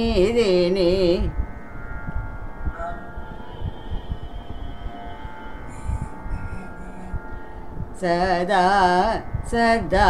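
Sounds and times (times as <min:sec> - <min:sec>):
pitched drone chord: 0:00.0 - 0:10.0.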